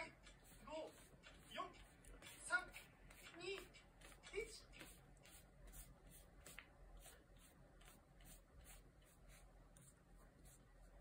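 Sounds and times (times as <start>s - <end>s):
paintbrush swishing on paper: 0.0s - 11.0s.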